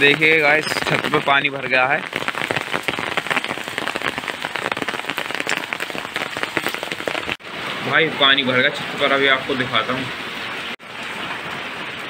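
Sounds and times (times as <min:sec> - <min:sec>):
heavy rain on concrete rooftop: 0:00.0 - 0:12.0.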